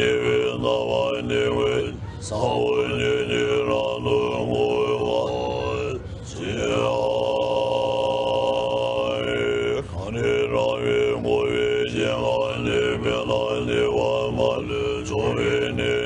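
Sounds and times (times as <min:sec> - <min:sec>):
throat singing drone with overtone: 0:00.0 - 0:16.0.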